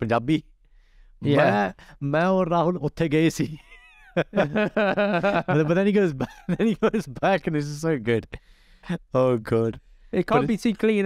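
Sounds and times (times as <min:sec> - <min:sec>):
man's high sliding voice: 0:01.2 - 0:01.7.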